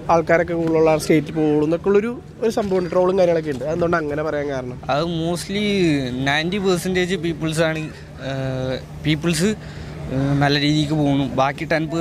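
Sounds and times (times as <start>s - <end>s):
man talking into a microphone: 0.0s - 12.0s.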